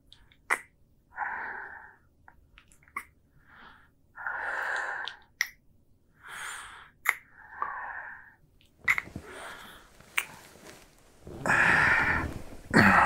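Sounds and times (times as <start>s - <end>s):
man breathing: 9.2s - 13.0s.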